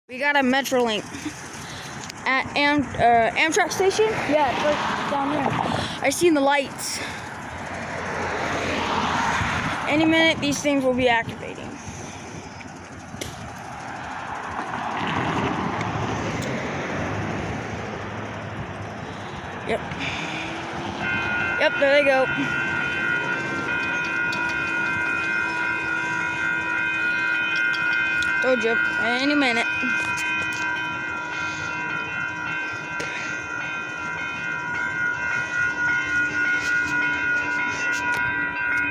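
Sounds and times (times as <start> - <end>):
crossing warning bell ringing: 0.1 - 38.9
tyres rushing on pavement: 0.2 - 38.9.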